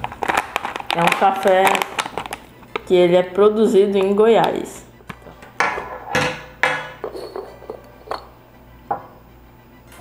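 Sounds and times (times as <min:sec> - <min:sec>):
items knocking and clinking on table: 0:04.0 - 0:08.3.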